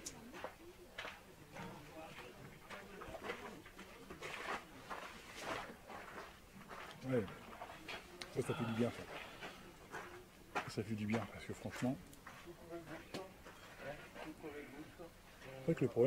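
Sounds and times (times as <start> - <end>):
distant people talking: 0.0 - 16.0
man speaking: 8.3 - 9.1, 14.0 - 16.0.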